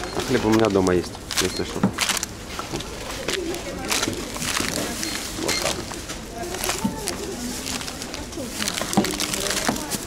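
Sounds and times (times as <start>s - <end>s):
plastic bags rustling: 0.0s - 10.0s.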